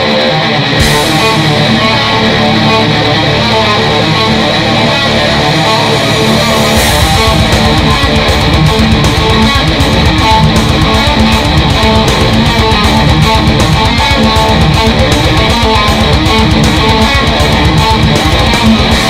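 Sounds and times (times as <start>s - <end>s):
backing track: 0.0s - 19.0s
distorted electric guitar riffing: 0.0s - 19.0s
drums with crash and kick drum: 0.7s - 4.8s, 5.5s - 19.0s.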